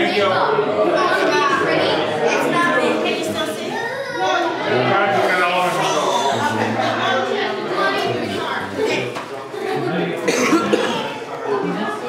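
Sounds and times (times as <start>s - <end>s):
people talking in a room: 0.0s - 12.0s
person coughing: 10.3s - 11.1s.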